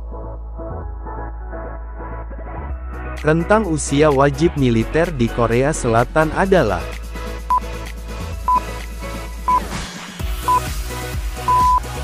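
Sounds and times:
background music: 0.0s - 12.0s
countdown timer beeps: 10.5s - 10.7s, 11.5s - 11.8s.

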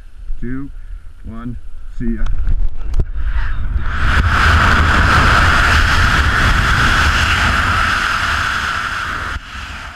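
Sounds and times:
wind roaring over microphone: 2.2s - 9.9s.

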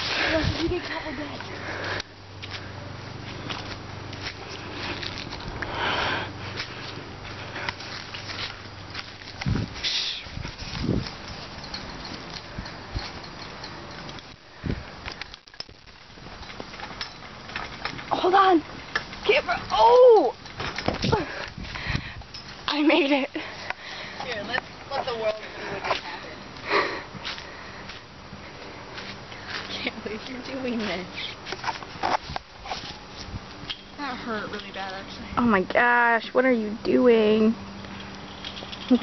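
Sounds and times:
leaves rustling against camera: 0.0s - 35.4s.

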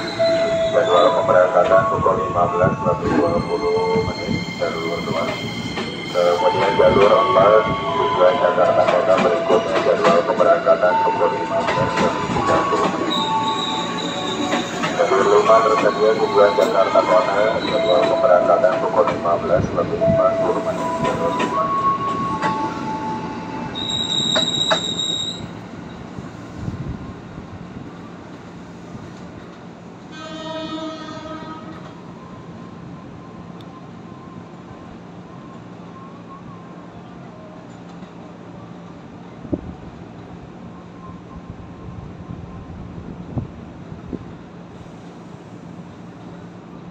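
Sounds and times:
train wheels squealing: 0.0s - 1.4s, 2.9s - 10.2s, 10.8s - 18.6s, 20.2s - 26.1s
electric train running past: 0.0s - 36.8s
train horn: 30.1s - 31.9s.

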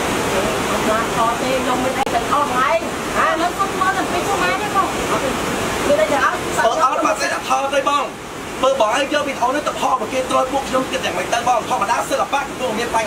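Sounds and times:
rushing stream water: 0.0s - 13.0s
people talking: 0.2s - 13.0s.

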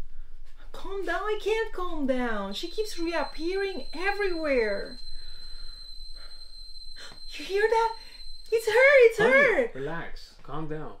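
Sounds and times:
kettle whistling: 2.1s - 9.8s
faint breathy sound: 5.0s - 8.4s.

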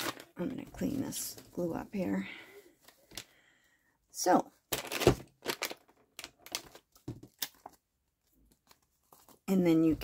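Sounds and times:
plastic packet crinkling: 4.7s - 9.4s.

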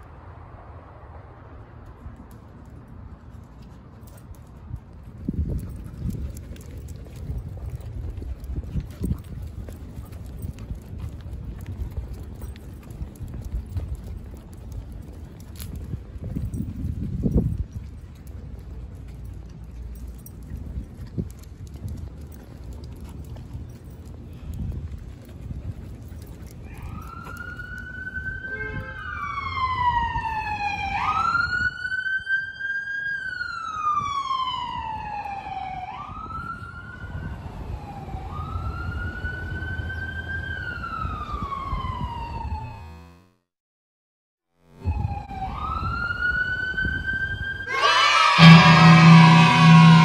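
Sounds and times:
street noise rumble: 0.0s - 43.3s, 44.7s - 50.0s
siren wailing: 26.7s - 43.2s, 44.7s - 50.0s.

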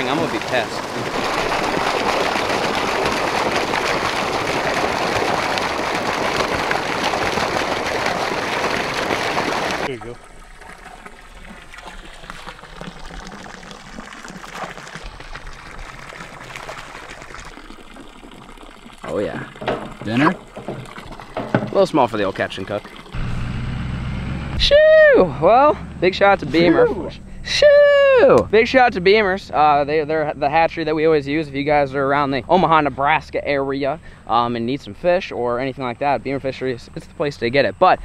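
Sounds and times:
water gushing into pond: 0.0s - 23.5s.

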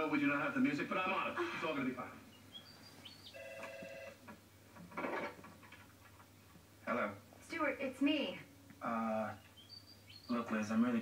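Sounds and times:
telephone ringing: 3.2s - 4.2s.

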